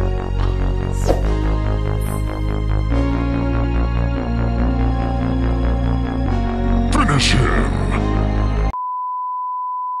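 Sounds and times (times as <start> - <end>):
music: 0.0 - 8.8.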